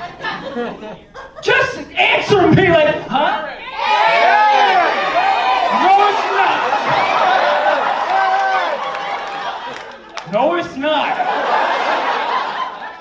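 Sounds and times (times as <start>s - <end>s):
audience talking and calling out: 3.2s - 12.9s.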